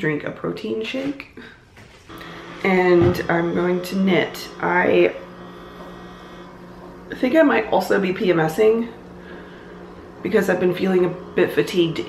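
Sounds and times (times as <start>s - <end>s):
refrigerator humming: 1.4s - 12.0s.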